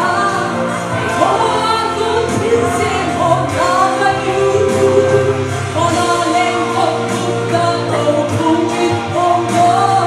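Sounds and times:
instrumental backing music: 0.0 - 10.0
woman singing into microphone: 0.0 - 10.0.

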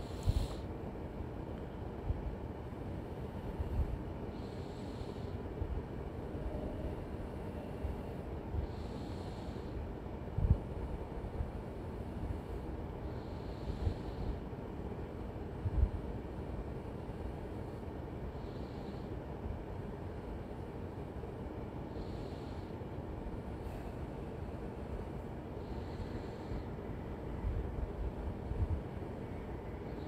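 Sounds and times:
person breathing: 0.0 - 0.7, 3.7 - 5.6, 8.5 - 14.6, 17.2 - 19.3, 21.8 - 27.5
steady low rumble: 0.0 - 30.0.

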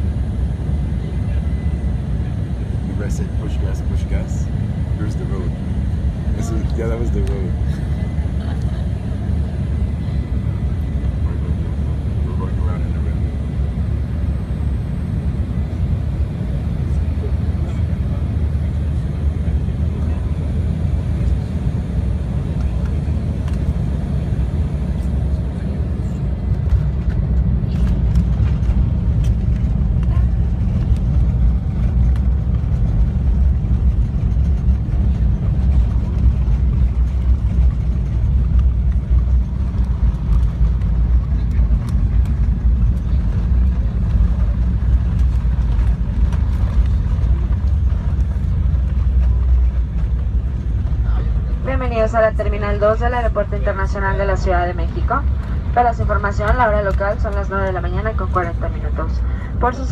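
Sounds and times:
jet engine cabin rumble: 0.0 - 59.9.

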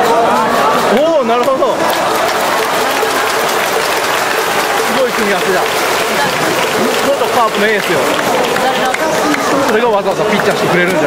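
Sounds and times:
crowd applauding: 0.9 - 11.0.

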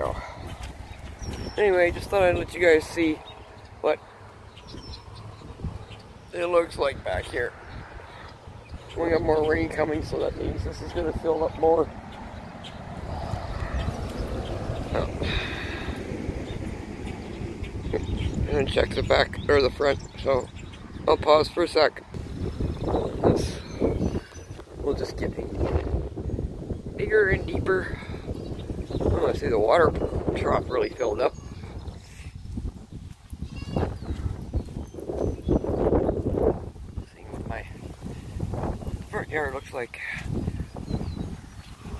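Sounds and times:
wind buffeting microphone: 0.0 - 41.9
goat bleating: 33.4 - 33.9.

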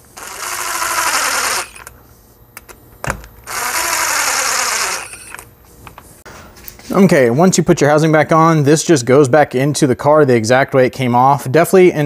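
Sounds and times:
cordless impact driver running: 0.0 - 1.9, 3.5 - 5.4.

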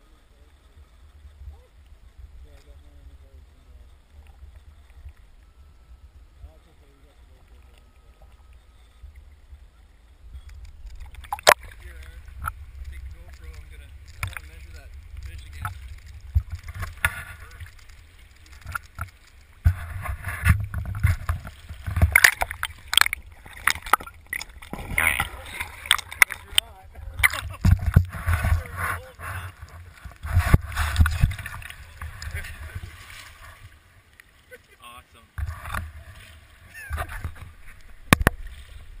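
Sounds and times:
river water rumbling: 0.0 - 39.0
water splashing: 0.0 - 39.0
sharp knocks and clicks: 37.1 - 38.5.

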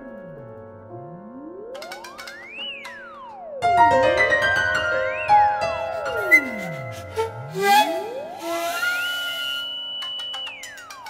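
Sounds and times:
electronic tone glissando: 0.0 - 4.0, 4.7 - 11.0
piano notes: 0.0 - 11.0
plucked notes: 0.0 - 11.0.

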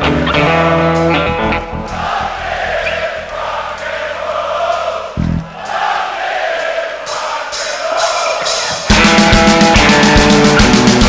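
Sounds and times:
electric guitar phrase: 0.0 - 3.3, 8.9 - 11.0
crowd singing and chanting: 1.2 - 10.5.

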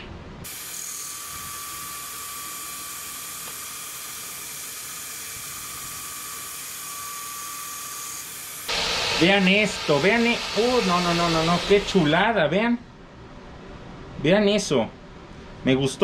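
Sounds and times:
belt grinder hissing on steel: 0.5 - 12.2
thin high whine: 8.7 - 12.5.

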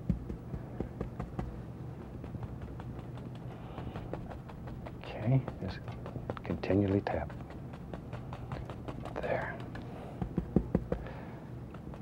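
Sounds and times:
paint brush tapping canvas: 0.0 - 12.0.

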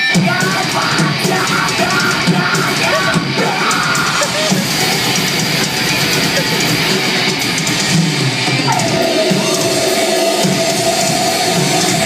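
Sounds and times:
distorted electric guitars: 0.0 - 12.0
drum kit: 0.0 - 12.0.

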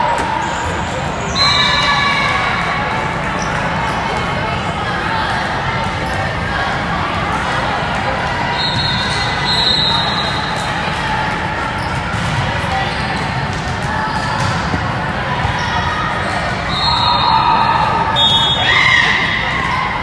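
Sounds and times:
voices in echoing hall: 0.0 - 20.0.

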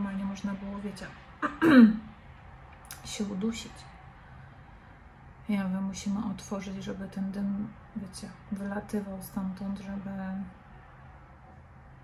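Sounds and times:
woman clearing her throat: 1.4 - 2.0.

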